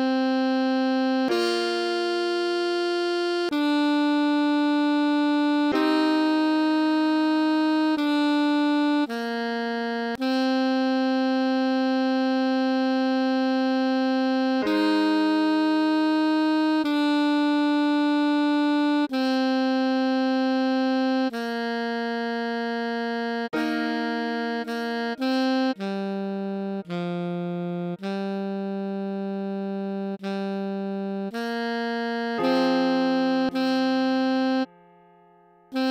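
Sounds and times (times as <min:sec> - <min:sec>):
alto saxophone long note: 0:00.0 - 0:35.9.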